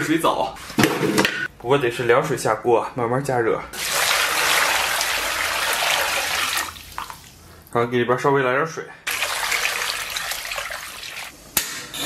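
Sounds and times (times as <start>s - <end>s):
water pouring into a pot: 3.8s - 7.4s, 9.1s - 11.3s.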